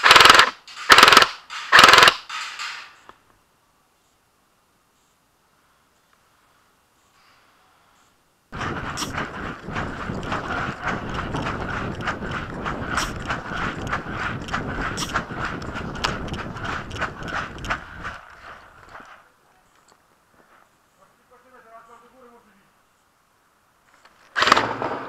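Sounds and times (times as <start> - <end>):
running footfalls on forest ground: 8.6 - 19.3.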